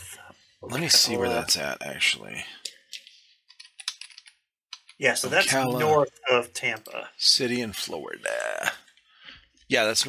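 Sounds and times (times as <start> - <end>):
keyboard typing: 2.7 - 5.0.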